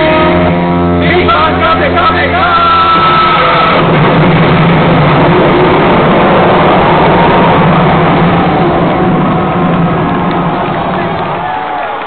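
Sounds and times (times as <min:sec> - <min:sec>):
rumbling energy blast effect: 0:00.0 - 0:11.7.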